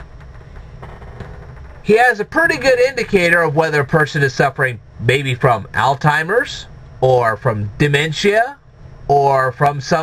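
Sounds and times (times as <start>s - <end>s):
electric fan whirring: 0.0s - 10.0s.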